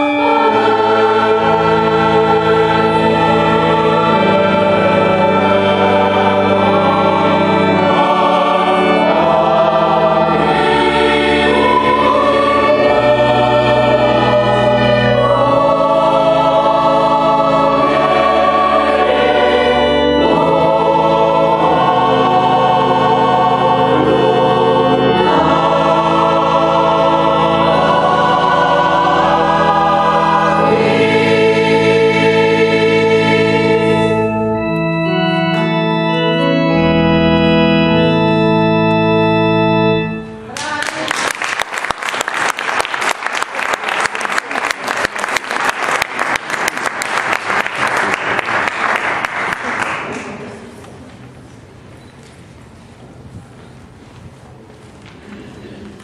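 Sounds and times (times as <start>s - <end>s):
organ notes: 0.0s - 50.5s
choir singing in parts: 0.0s - 50.6s.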